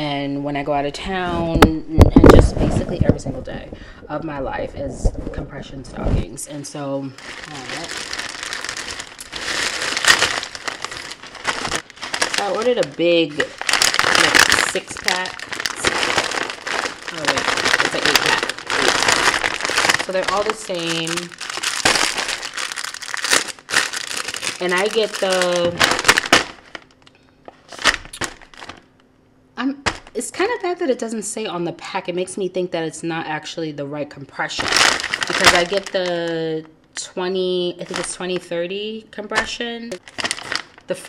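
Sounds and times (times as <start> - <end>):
plastic bag crinkling: 7.0 - 28.9, 34.5 - 36.6, 37.8 - 38.4, 39.9 - 41.0.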